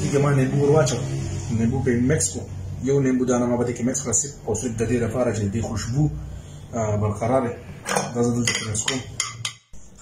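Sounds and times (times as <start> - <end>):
glass and crockery clinking: 7.8 - 9.7.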